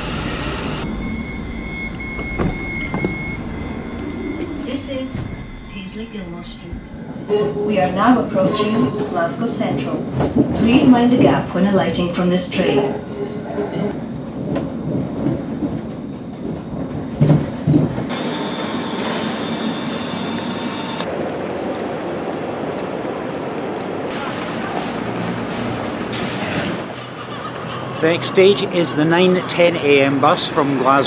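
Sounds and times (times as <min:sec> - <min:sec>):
thin high whine: 0:00.0 - 0:09.9, 0:18.1 - 0:21.1
echoing station concourse ambience: 0:00.0 - 0:31.0
train running: 0:00.0 - 0:31.0
heavy clunks of wheels on rails: 0:01.9 - 0:08.2.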